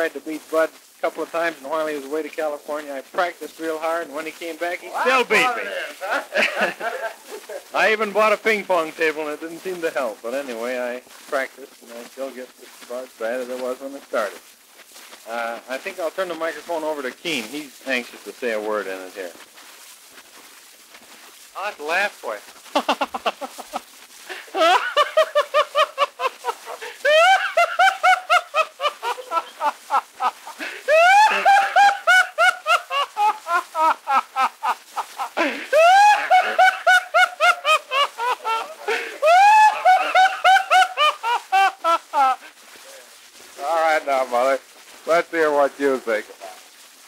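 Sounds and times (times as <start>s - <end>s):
person laughing hard: 5.0s - 7.7s, 22.7s - 42.5s.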